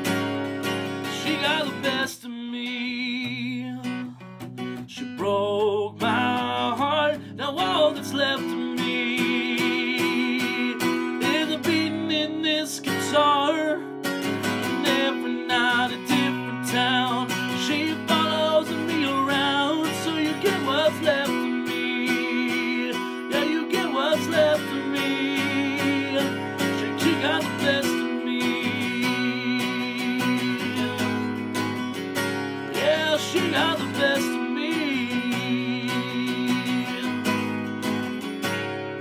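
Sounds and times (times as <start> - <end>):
acoustic guitar strummed: 0.0 - 39.0
man singing: 1.0 - 31.8, 32.6 - 37.6.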